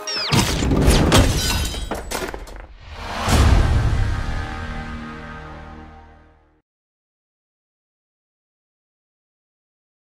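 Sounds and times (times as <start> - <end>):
glass shattering: 0.2 - 2.6
things crashing: 0.3 - 4.4.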